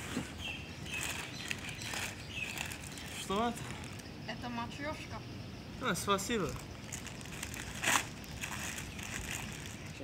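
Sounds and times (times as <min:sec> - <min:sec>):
gift bag crinkling: 0:00.8 - 0:04.0, 0:06.4 - 0:10.0.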